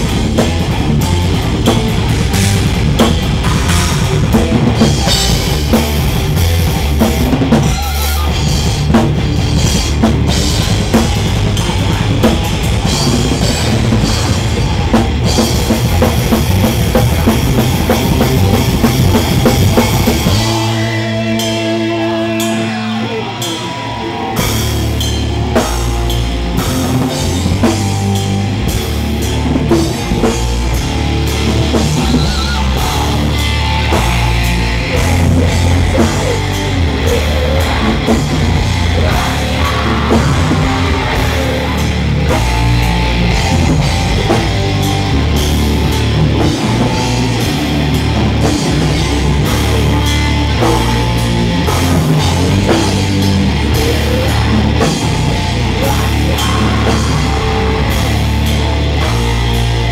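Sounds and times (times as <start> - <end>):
drum kit pounding: 0.0 - 59.9
heavy metal band playing live: 0.0 - 59.9.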